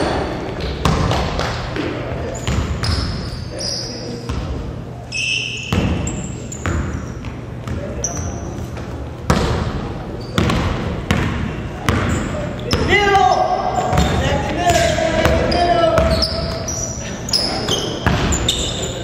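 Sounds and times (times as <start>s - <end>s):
basketball bouncing on hardwood floor: 0.6s - 1.9s, 10.4s - 12.1s, 13.9s - 15.4s
shoe squeaks: 2.3s - 4.3s, 5.1s - 8.7s, 10.1s - 10.5s, 12.1s - 14.2s, 14.8s - 19.0s
players calling out: 12.1s - 19.0s.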